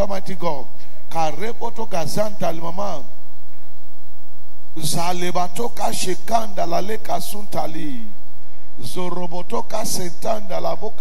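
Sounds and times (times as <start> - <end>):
man speaking: 0.0 - 3.1, 4.8 - 8.2, 8.8 - 11.0
steady hum of held tones: 0.0 - 11.0.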